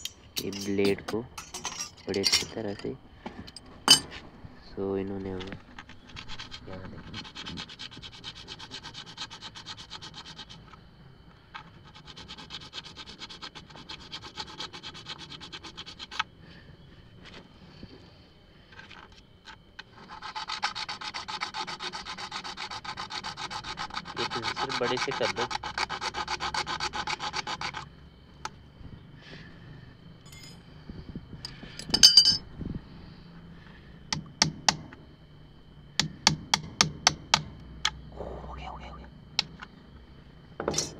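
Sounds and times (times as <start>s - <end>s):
saw blade rasping in plastic pipe: 19.8s - 27.9s.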